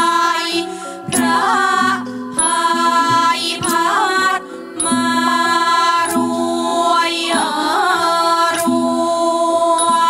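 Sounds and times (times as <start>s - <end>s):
women's chorus singing: 0.0s - 10.0s.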